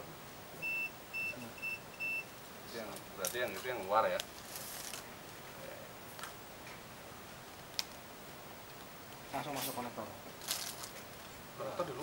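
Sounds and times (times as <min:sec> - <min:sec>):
multimeter high-pitched beeps: 0:00.6 - 0:02.3.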